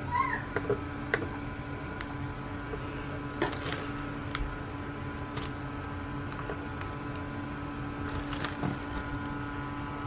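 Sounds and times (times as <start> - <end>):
plastic packaging crinkling: 3.4 - 4.4, 5.2 - 6.4, 8.0 - 9.5.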